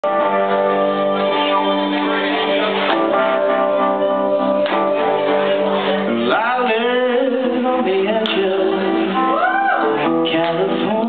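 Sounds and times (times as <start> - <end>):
live band playing: 0.0 - 11.0
person singing: 2.0 - 11.0.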